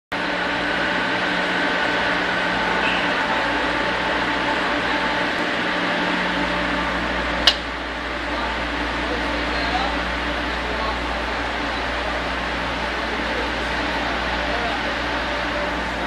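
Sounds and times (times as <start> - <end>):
loud machinery hum: 0.1 - 16.0
sharp click: 7.4 - 7.6.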